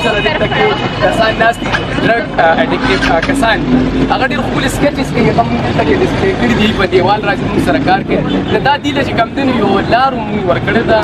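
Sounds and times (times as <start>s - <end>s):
man talking: 0.0s - 11.0s
street noise: 0.0s - 11.0s.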